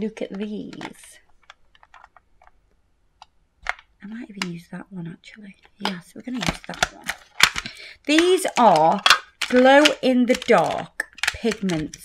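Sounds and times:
nails tapping plastic pots: 0:05.8 - 0:12.0.

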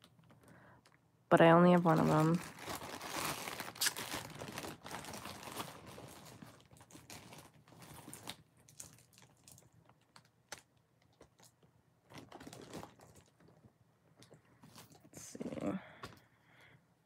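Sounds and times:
plastic bag crinkling: 0:01.6 - 0:13.6.

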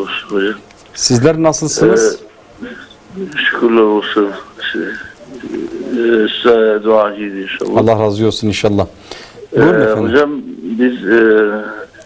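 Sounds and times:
man speaking over telephone: 0:00.0 - 0:08.9, 0:09.5 - 0:12.0.

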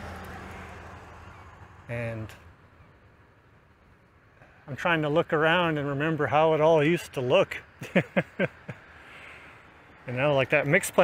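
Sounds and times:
faint low engine hum: 0:00.0 - 0:11.0.

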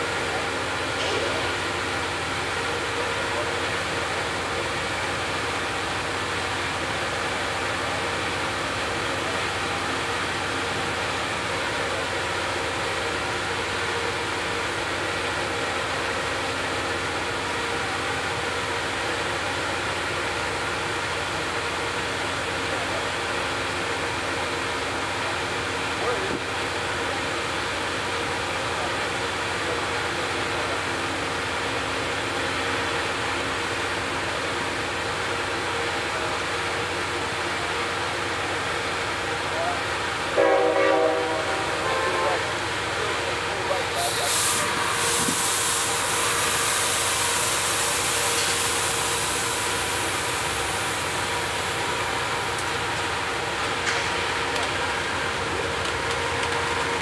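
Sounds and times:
idling train hum and hiss: 0:00.0 - 0:57.0
locomotive air horn blast: 0:40.3 - 0:42.6.

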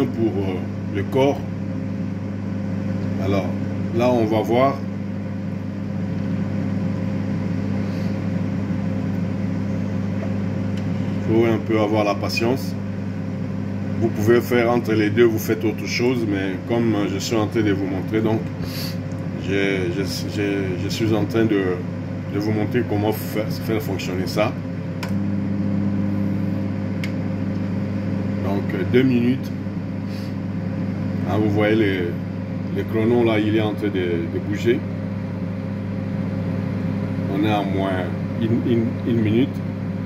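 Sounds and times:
microwave oven humming: 0:00.0 - 0:40.0
microwave click: 0:25.0 - 0:25.3, 0:26.9 - 0:27.9.

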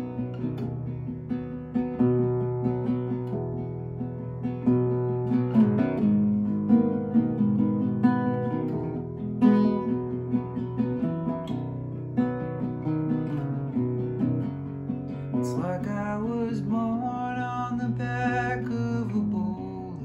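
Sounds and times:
fingerpicked classical guitar: 0:00.0 - 0:20.0.

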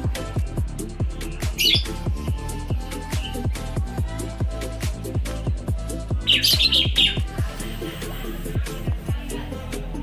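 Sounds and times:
bird chirping: 0:00.8 - 0:03.5, 0:06.2 - 0:07.5.

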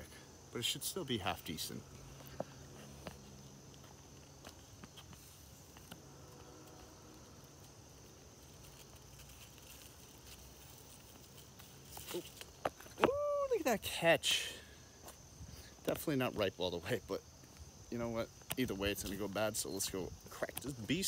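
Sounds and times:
high insect drone: 0:00.0 - 0:21.0
branch clicks and rustles: 0:01.8 - 0:13.0.

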